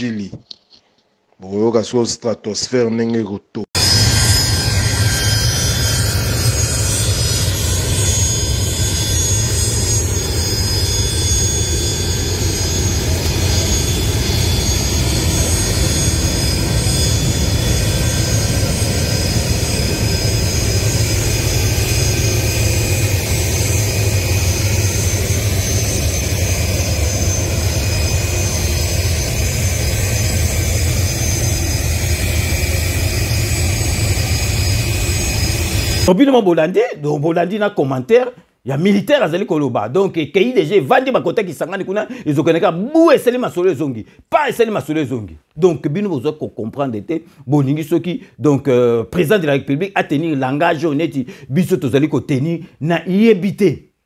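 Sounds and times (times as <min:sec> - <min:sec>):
jet engines rumbling: 0:03.8 - 0:36.1
high jet engine whine: 0:03.8 - 0:36.2.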